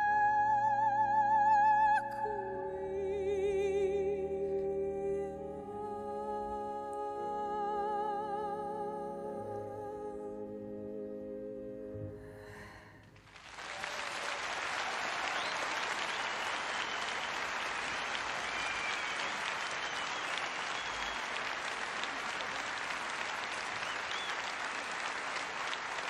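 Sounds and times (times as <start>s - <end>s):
audience applause: 13.2s - 26.0s
short high whistles: 15.3s - 21.4s, 23.8s - 24.5s.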